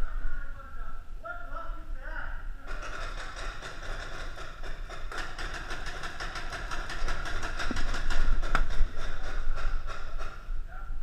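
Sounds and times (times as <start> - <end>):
paintball markers firing: 2.7 - 10.4
sharp cracks: 2.7 - 10.6.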